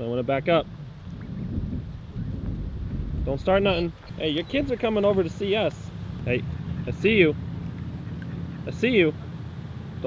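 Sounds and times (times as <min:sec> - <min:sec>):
wind buffeting microphone: 0:00.3 - 0:08.7.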